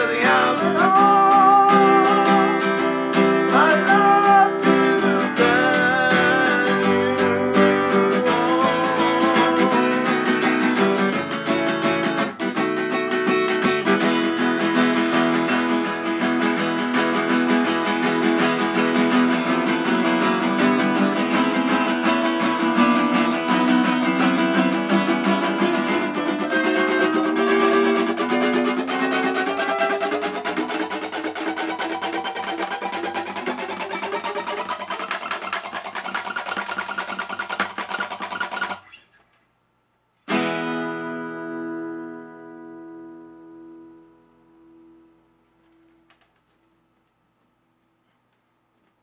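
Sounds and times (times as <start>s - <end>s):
acoustic guitar strumming chords: 0.0s - 38.8s, 40.3s - 45.8s.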